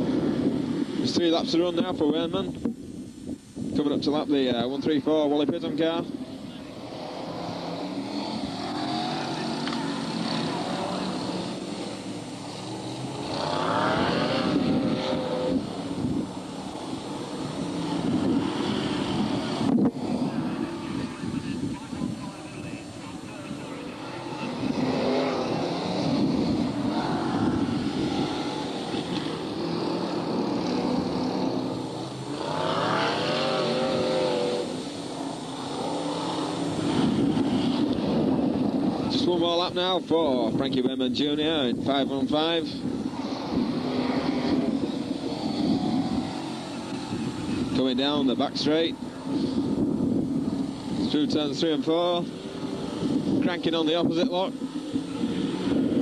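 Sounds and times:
race car engines accelerating past: 5.8 - 56.0.

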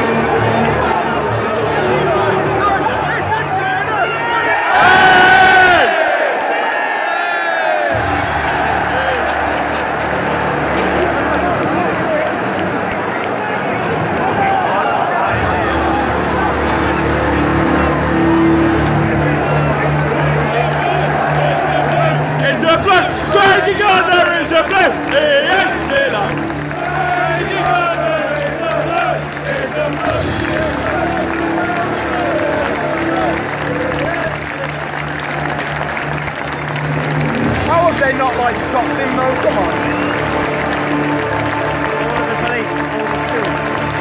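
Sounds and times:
crowd cheering and chanting: 0.0 - 44.0.

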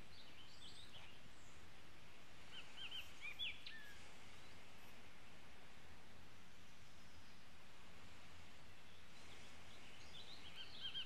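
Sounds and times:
birds chirping faintly: 0.0 - 11.0
outdoor background hiss: 0.0 - 11.0.

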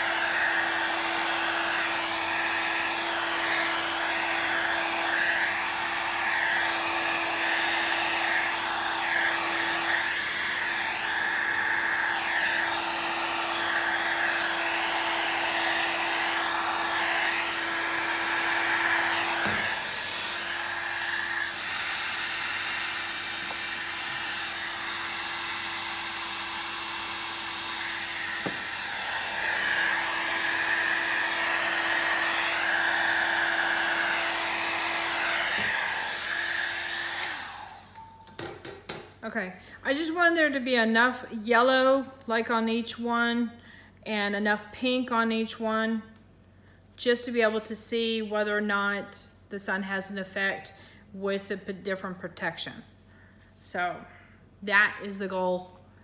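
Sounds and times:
heat gun fan whine: 0.0 - 39.0.

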